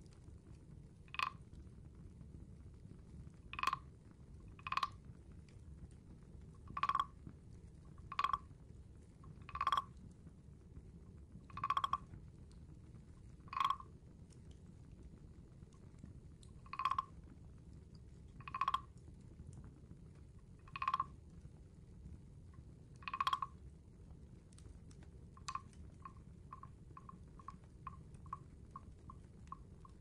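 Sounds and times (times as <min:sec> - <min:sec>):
wooden frog guiro croaks: 0:01.0 - 0:01.6, 0:03.4 - 0:05.1, 0:06.5 - 0:07.3, 0:07.9 - 0:08.6, 0:09.2 - 0:10.0, 0:11.4 - 0:12.2, 0:13.3 - 0:14.0, 0:16.4 - 0:17.4, 0:18.3 - 0:19.1, 0:20.5 - 0:21.3, 0:22.5 - 0:23.6, 0:25.3 - 0:30.0.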